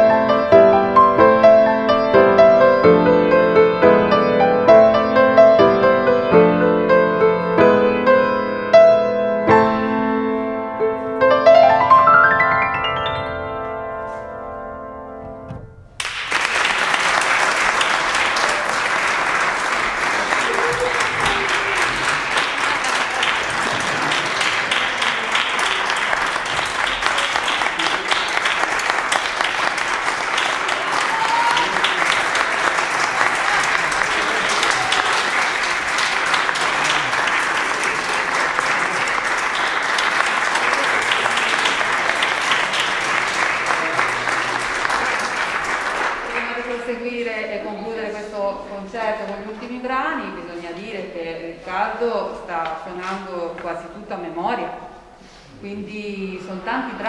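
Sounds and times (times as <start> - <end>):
piano note: 0.0 - 16.3
audience applauding: 16.0 - 47.0.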